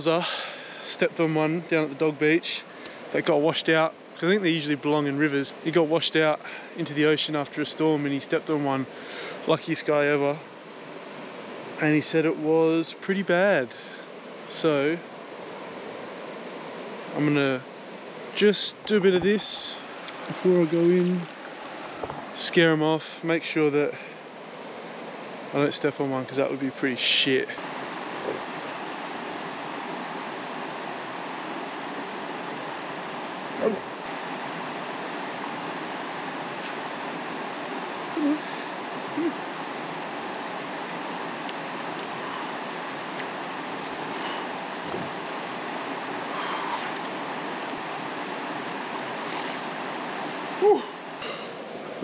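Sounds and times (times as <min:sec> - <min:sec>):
flowing river water: 0:00.0 - 0:52.0.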